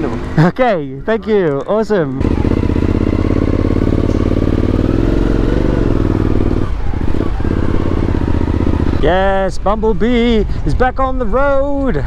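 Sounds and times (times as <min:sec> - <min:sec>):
motorcycle engine riding off: 0:02.0 - 0:10.4.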